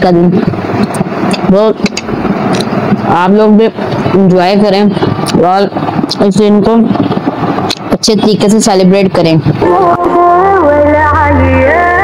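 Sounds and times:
steady rushing noise: 0.0s - 12.0s.

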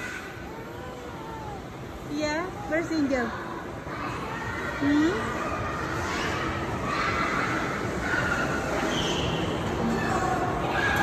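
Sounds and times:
go-karts running in a hall: 0.0s - 11.0s.

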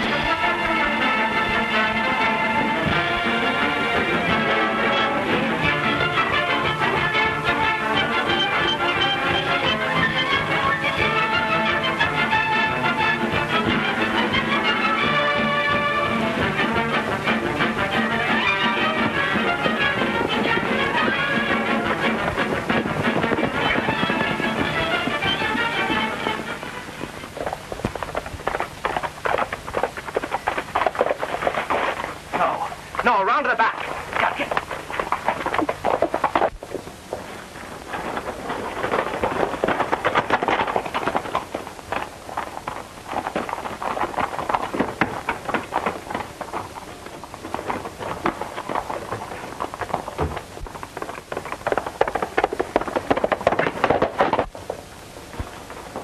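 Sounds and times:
background music: 0.0s - 27.2s.

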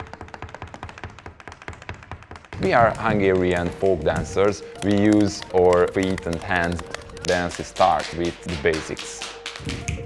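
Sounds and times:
hard shoes tapping a stage floor: 0.0s - 10.0s.

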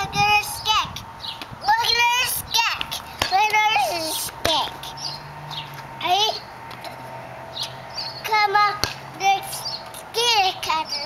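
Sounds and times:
toddler calling: 3.4s - 4.3s.

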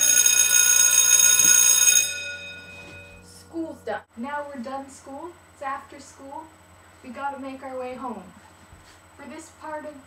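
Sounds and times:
school bell ringing: 0.0s - 3.2s.

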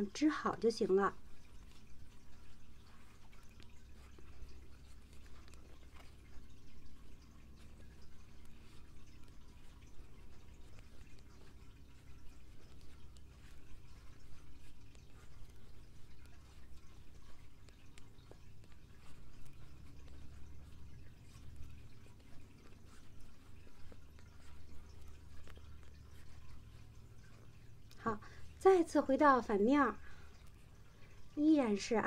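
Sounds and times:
low steady hum: 0.0s - 32.0s.

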